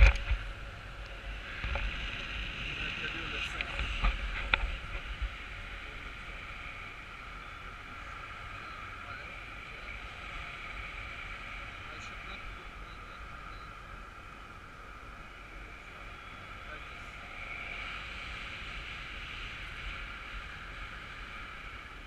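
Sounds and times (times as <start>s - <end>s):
low wind buffeting: 0.0s - 22.0s
wind rushing with whistling: 0.0s - 22.0s.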